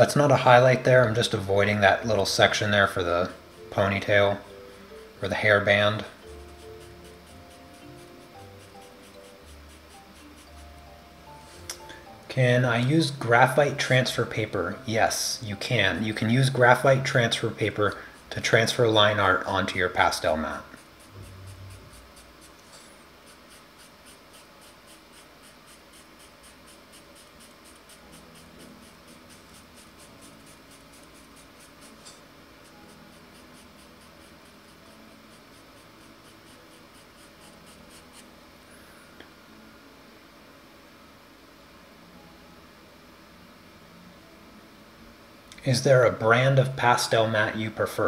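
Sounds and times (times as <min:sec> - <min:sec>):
pencil scratching on paper: 0:05.4 - 0:10.8, 0:20.4 - 0:38.3.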